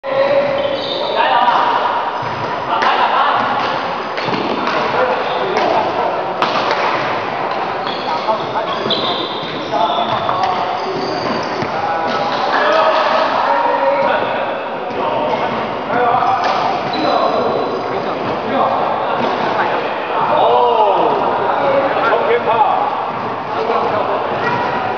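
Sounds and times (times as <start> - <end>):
voices talking in a hall: 0.0 - 24.9
rackets striking shuttlecock: 1.5 - 5.0, 5.6 - 8.3.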